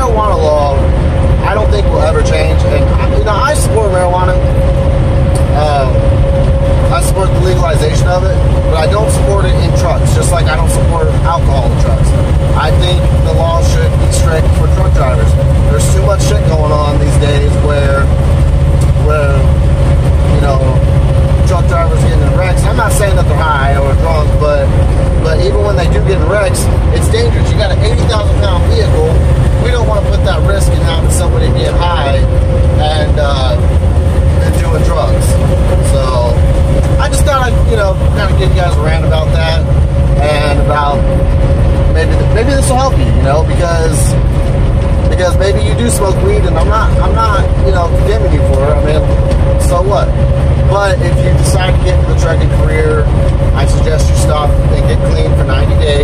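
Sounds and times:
indistinct voices talking: 0.0 - 56.0
mid-pitched whine: 0.0 - 56.0
truck engine and road rumble: 0.0 - 56.0.

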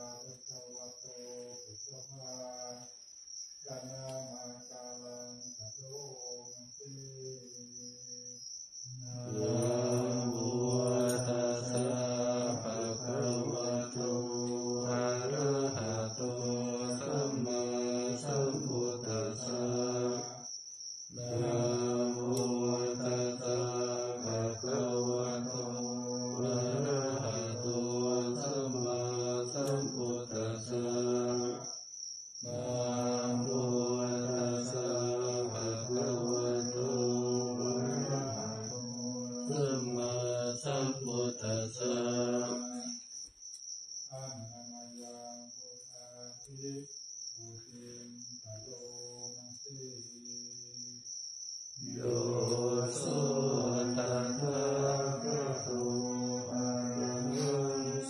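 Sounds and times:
melodic chanting: 9.0 - 20.4, 21.1 - 31.8, 32.4 - 43.0, 51.8 - 58.0.

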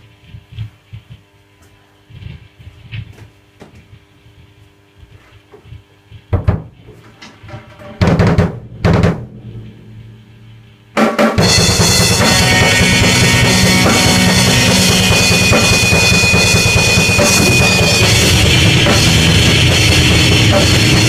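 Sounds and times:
drum and cymbal crashes: 7.6 - 21.0
loud drum hit: 7.8 - 21.0
low ringing note: 8.6 - 21.0.

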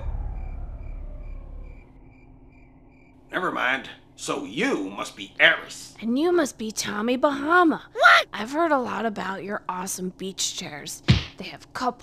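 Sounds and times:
low rumble: 0.0 - 3.3
cricket chirps: 0.0 - 4.2.

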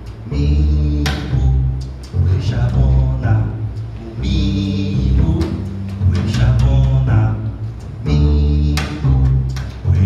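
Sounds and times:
plucked double bass: 0.0 - 10.0.

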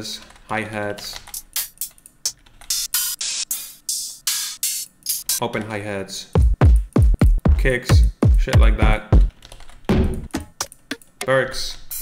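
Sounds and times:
closed hi-hat ticks: 1.2 - 5.4, 10.5 - 12.0
open hi-hat hits: 2.7 - 5.4, 6.4 - 9.3.

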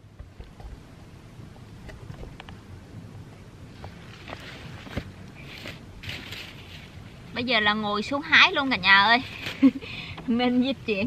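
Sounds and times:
rustling and crackling of vines: 1.8 - 10.1.

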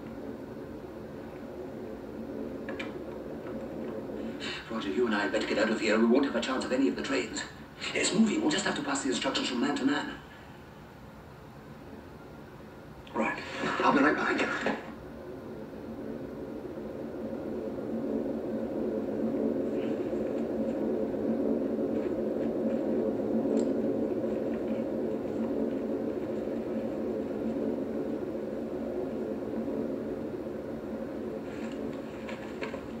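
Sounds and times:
bomber aircraft engines droning: 0.0 - 33.0.

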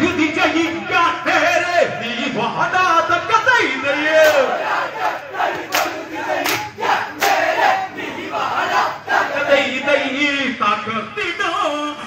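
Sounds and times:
men shouting a chanted chorus: 3.9 - 10.2.

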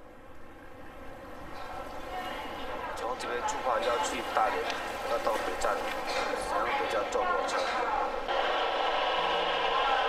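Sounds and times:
metro station mechanical noise: 0.0 - 10.0.

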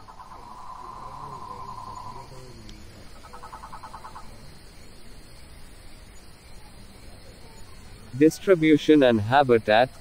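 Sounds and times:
bird calling: 0.0 - 4.4.

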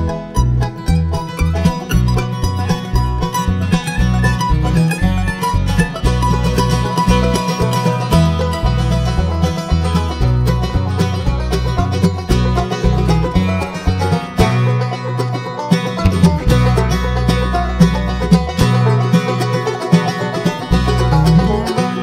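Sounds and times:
acoustic guitars: 0.0 - 22.0
banjo: 0.0 - 22.0
mandolin: 0.0 - 22.0.

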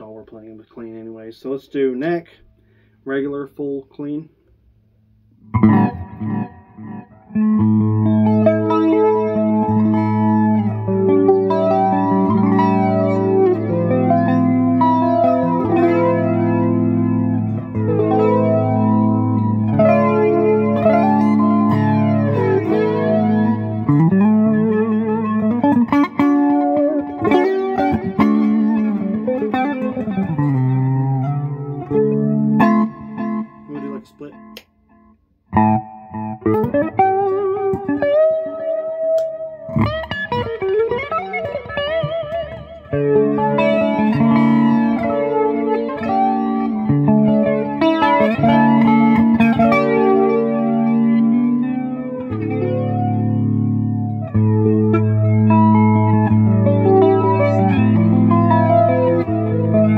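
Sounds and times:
clean electric guitar playing: 5.3 - 59.9.

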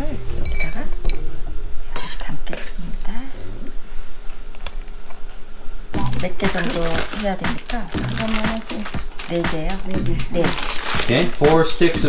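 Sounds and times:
person talking: 6.0 - 12.0.

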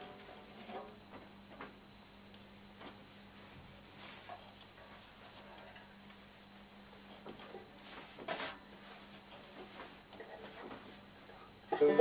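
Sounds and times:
quiet room hum: 0.0 - 12.0.

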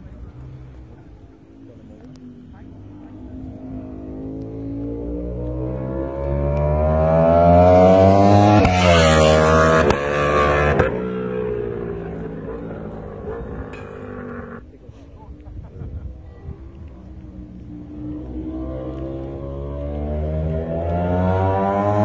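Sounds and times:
motorcycle engine accelerating: 0.0 - 22.0.

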